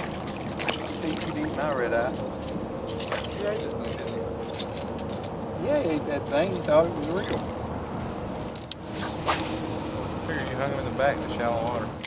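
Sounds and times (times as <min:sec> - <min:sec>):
fish splashing and thrashing: 0:00.0 - 0:03.8.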